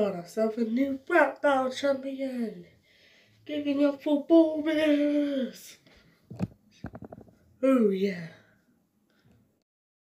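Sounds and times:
boy speaking: 0:00.0 - 0:02.7, 0:03.4 - 0:05.8, 0:07.6 - 0:08.4.

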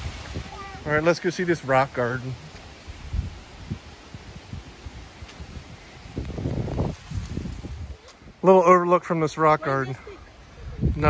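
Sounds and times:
wind buffeting microphone: 0:00.0 - 0:01.0, 0:02.4 - 0:08.4, 0:09.8 - 0:11.0.

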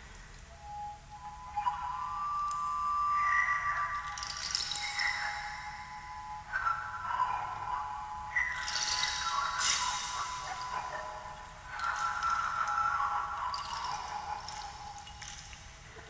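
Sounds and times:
ringing tones struck on objects: 0:01.6 - 0:06.5, 0:08.4 - 0:15.8.

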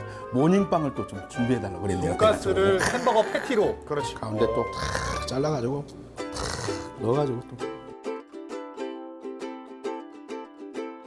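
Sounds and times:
plucked string music: 0:00.0 - 0:11.0.

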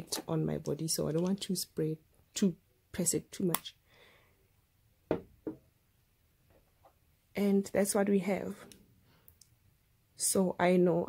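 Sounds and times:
glass bottle knocking on table: 0:05.1 - 0:05.6.

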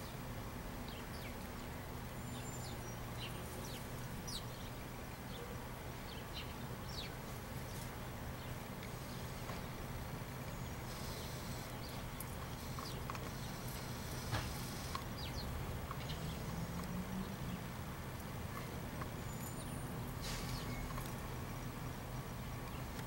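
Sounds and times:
low outdoor background hum: 0:00.0 - 0:23.0.

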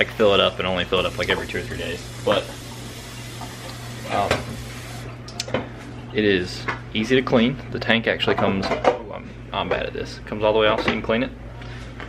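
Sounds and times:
water running into reservoir: 0:00.1 - 0:05.2.

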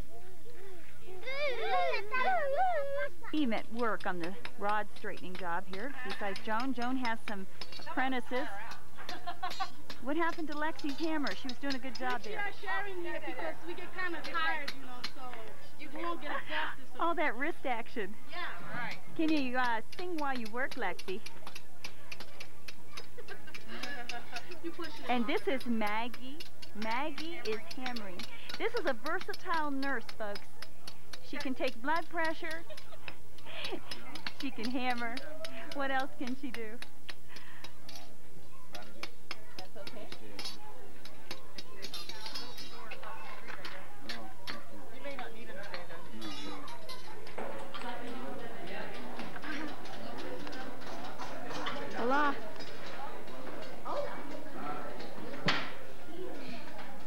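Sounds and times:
people's voices: 0:00.0 - 0:57.0
hammers tapping steel rods: 0:03.5 - 0:12.3, 0:19.2 - 0:44.6.

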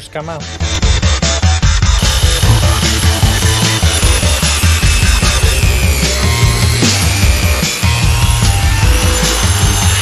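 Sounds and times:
background music with heavy beat: 0:00.1 - 0:10.0
circular saw cutting foam: 0:01.2 - 0:10.0.

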